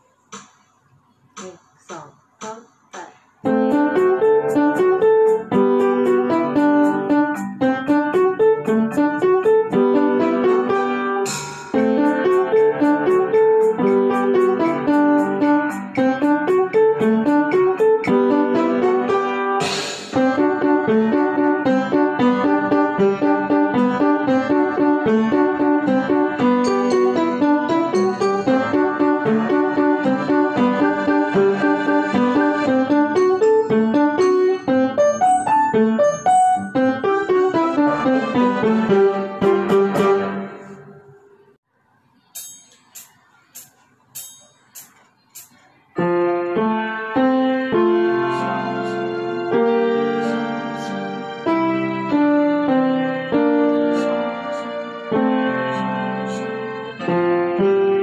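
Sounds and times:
upright piano short detached notes: 3.5 - 41.0.

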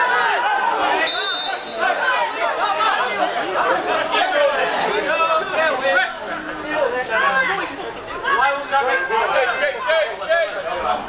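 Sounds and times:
chatter of spectators: 0.0 - 11.0.

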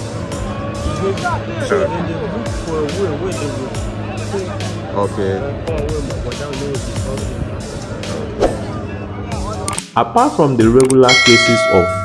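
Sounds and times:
faint outdoor voices: 0.0 - 11.0
background music: 0.0 - 12.0.

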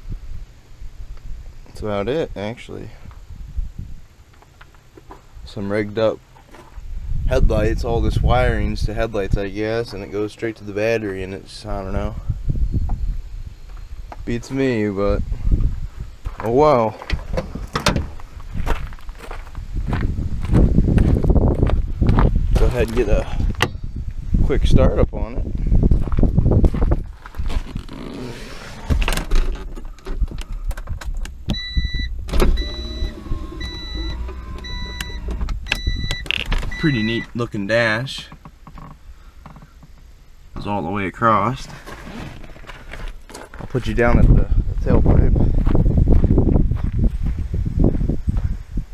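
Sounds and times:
wind buffeting microphone: 2.9 - 4.1, 6.8 - 9.9, 11.6 - 27.8, 43.7 - 48.9
car warning chime beeping: 31.5 - 37.4.

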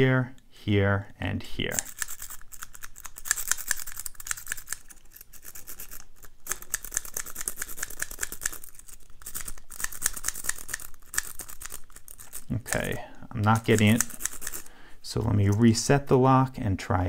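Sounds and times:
lock pick clicking and scraping: 1.7 - 14.7.

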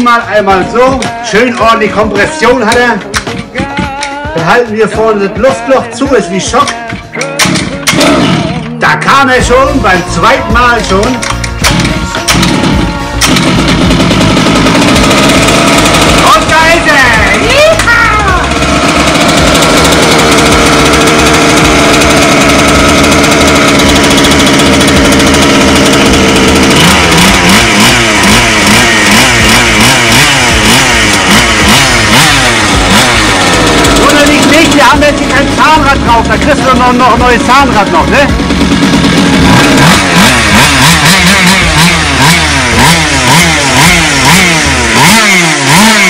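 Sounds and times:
pull-start: 0.0 - 46.0
small two-stroke engine revving: 6.2 - 8.8, 9.4 - 46.0.

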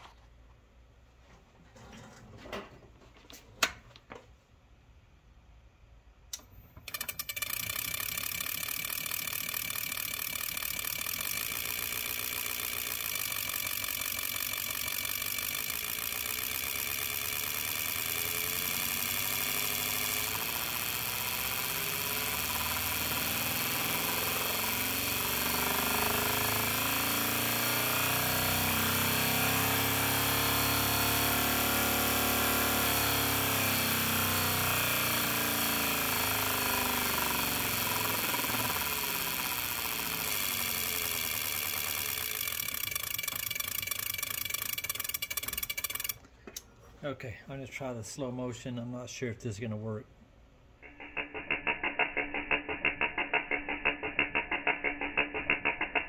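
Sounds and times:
distributor drive whirring: 6.3 - 46.2.

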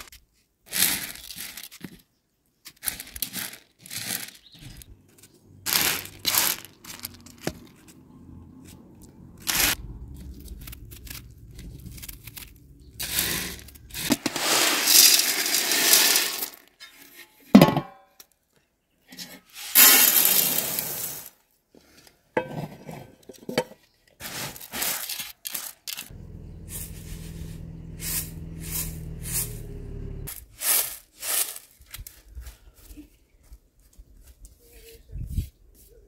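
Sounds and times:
lentils clicking and scraping: 0.1 - 16.7, 24.2 - 32.7
lentils pouring onto metal tray: 5.7 - 7.2, 11.8 - 16.7, 19.8 - 21.3, 30.6 - 31.7.

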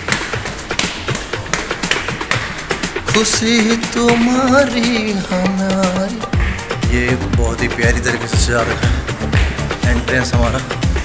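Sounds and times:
footsteps on indoor stairs: 0.0 - 5.1.

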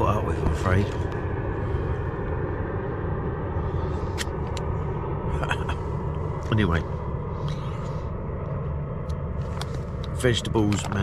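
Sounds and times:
airliner rumbling overhead: 0.0 - 11.0.

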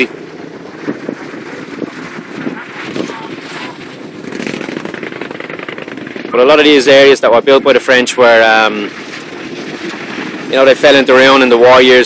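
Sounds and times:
small engines passing in traffic: 0.0 - 8.0.

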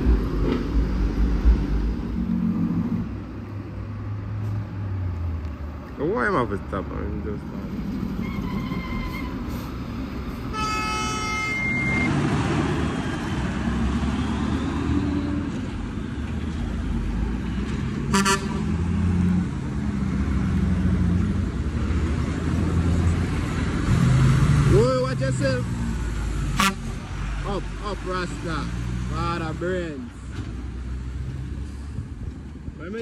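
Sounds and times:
diesel trucks rumbling: 0.0 - 33.0
truck horn: 10.5 - 12.2, 18.1 - 18.7, 26.5 - 27.0.

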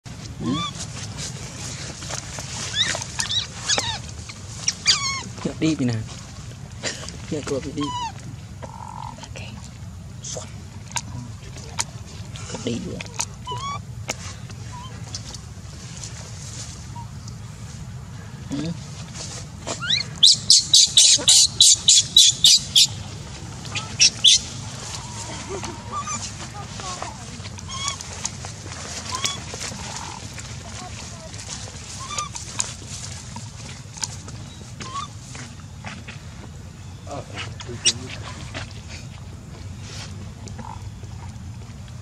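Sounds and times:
baby monkey squealing: 0.4 - 0.8, 2.7 - 5.3, 7.8 - 8.2, 13.2 - 13.9, 19.7 - 23.0, 23.7 - 26.3, 27.6 - 28.2, 29.1 - 30.2, 32.0 - 32.4, 34.8 - 35.2
bird high chirps: 19.8 - 23.0, 23.7 - 25.1.

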